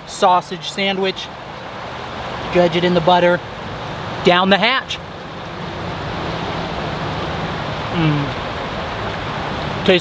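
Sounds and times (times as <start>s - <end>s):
river flowing: 0.0s - 10.0s
person humming: 7.9s - 8.4s.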